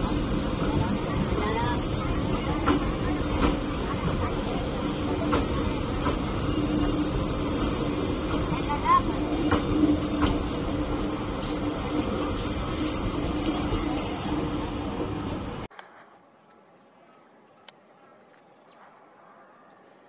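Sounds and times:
train coaches rumbling on rails: 0:00.0 - 0:15.7.

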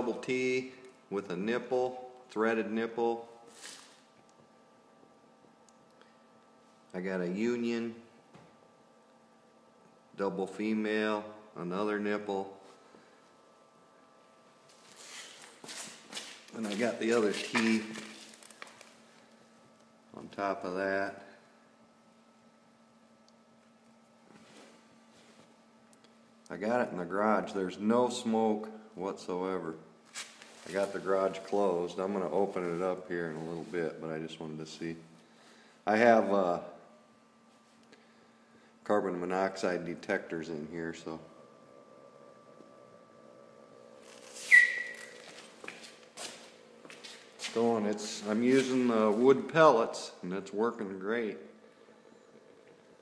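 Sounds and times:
small computer fan hum: 0:00.0 - 0:53.0
short high-pitched ring: 0:44.4 - 0:45.2.

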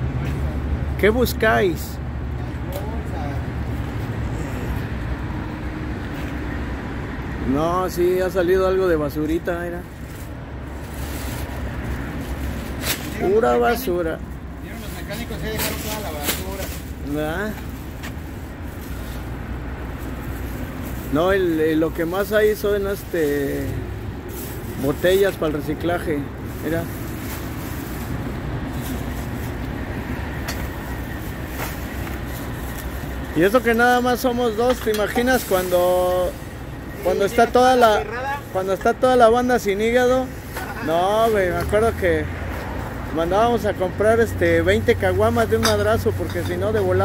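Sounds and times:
street background rumble: 0:00.0 - 0:47.0.

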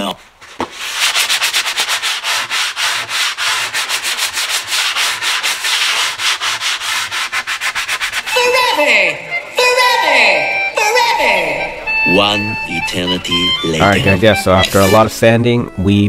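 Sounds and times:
sanding sponge scratching: 0:00.6 - 0:08.7, 0:14.0 - 0:15.4.

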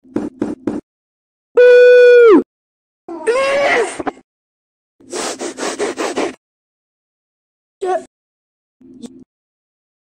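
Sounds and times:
harsh scratchy rasp: 0:05.0 - 0:06.4.

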